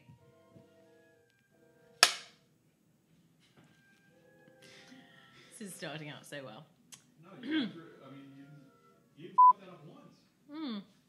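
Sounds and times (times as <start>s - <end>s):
hand clap: 2.0s - 2.3s.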